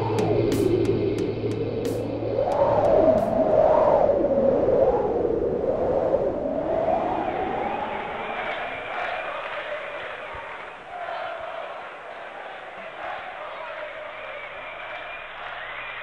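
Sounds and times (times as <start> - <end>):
steady drone: 0.0 - 3.5.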